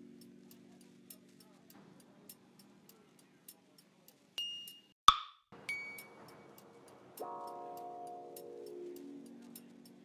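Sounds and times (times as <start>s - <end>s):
music with ticking beat: 0.0s - 10.0s
sharp pop sound effect: 5.1s - 5.4s.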